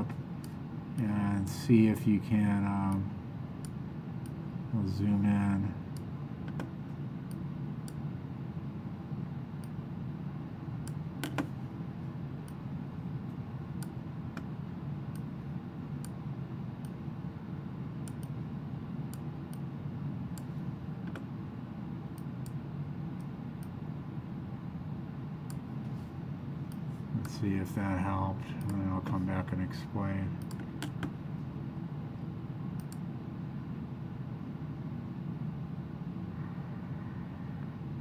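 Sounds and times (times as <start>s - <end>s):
low room hum: 0.0s - 38.0s
mouse and keyboard clicks: 10.9s - 11.5s.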